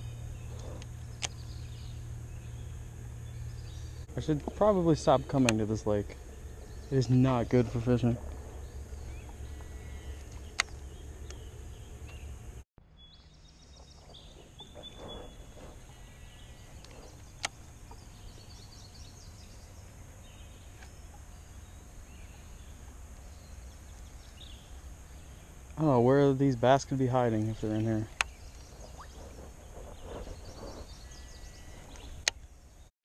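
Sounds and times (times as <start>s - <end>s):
faint bird calls: 0.0s - 12.4s, 13.7s - 32.4s
low rumble: 0.0s - 12.6s
sharp clicks: 5.3s - 5.7s, 9.2s - 11.4s.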